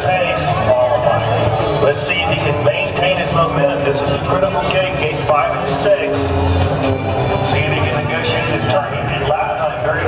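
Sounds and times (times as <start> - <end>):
man commentating: 0.0 - 6.7, 7.3 - 10.0.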